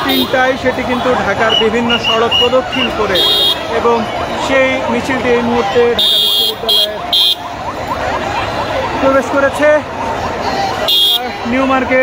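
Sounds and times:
crowd noise and chanting: 0.0s - 12.0s.

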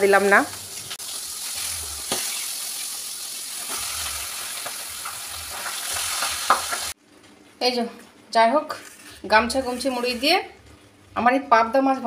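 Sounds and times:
fish sizzling in oil: 0.0s - 7.0s.

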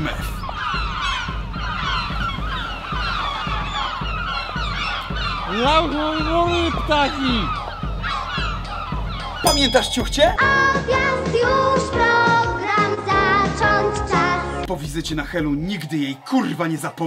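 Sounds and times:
drawn-out wavering gull call: 0.0s - 10.4s
gulls squawking and crying: 0.0s - 10.4s, 14.7s - 17.0s.

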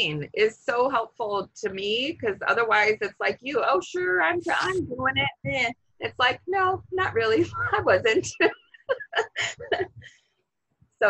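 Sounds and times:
woman laughing: 7.0s - 10.1s.

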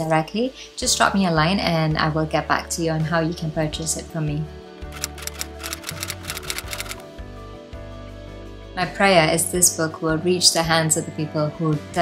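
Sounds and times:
soft background music: 0.0s - 12.0s
typewriter keystroke clicks: 4.9s - 7.0s.

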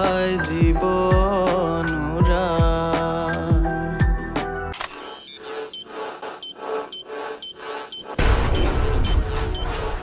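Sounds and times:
short beeping tones: 4.8s - 9.8s.

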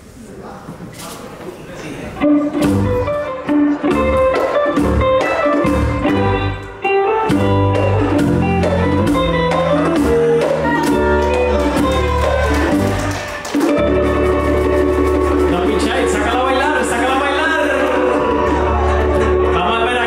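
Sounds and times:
electric bass: 2.2s - 20.0s
electric guitar melody: 2.2s - 20.0s
hand percussion: 7.4s - 17.0s.

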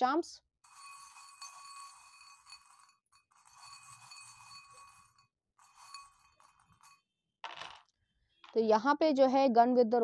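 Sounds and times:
metal charms clinking in glass bowl: 0.6s - 7.1s.

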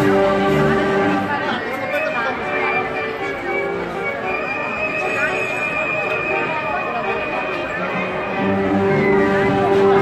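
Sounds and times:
brass marching band playing: 0.0s - 1.6s, 2.4s - 10.0s
crowd voices: 0.0s - 10.0s.

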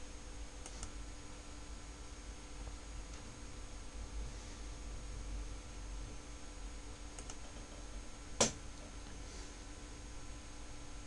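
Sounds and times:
steady low background hum: 0.0s - 11.0s.

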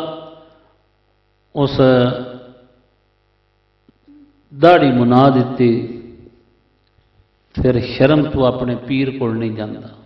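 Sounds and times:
faint electrical mains hum: 0.0s - 10.0s
man speaking over loudspeakers: 1.6s - 2.5s, 4.5s - 6.2s, 7.6s - 10.0s.

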